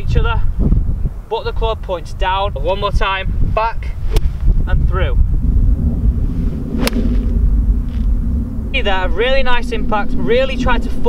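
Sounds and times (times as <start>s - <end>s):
wind rumble on microphone: 0.0s - 11.0s
golf club striking ball: 6.6s - 8.0s.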